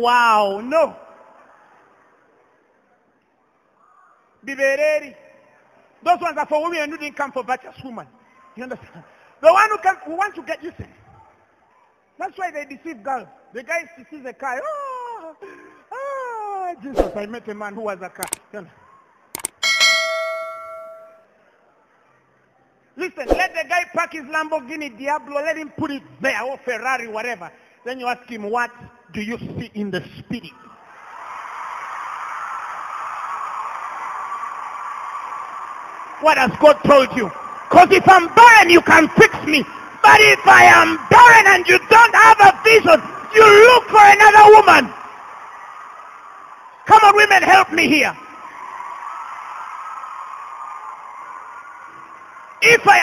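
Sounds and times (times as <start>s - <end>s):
faint background noise: 0.0s - 53.0s
mouse clicks: 19.4s - 19.6s
bright bell ding: 19.6s - 21.3s.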